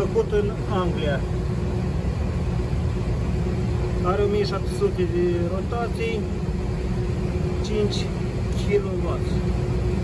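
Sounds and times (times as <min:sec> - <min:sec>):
constant pitched hum: 0:00.0 - 0:10.0
ventilation machinery rumble: 0:00.0 - 0:10.0.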